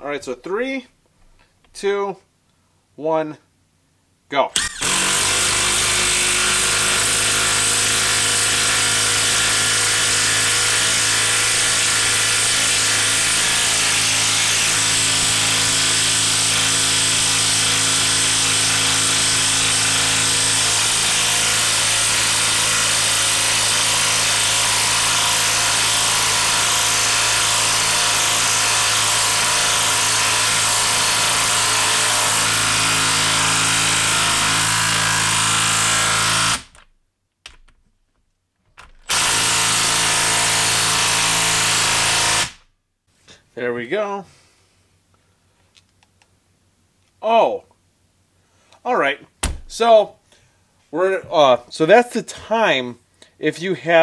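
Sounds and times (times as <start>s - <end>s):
impact wrench hammering: 4.6s - 36.8s, 38.8s - 42.6s.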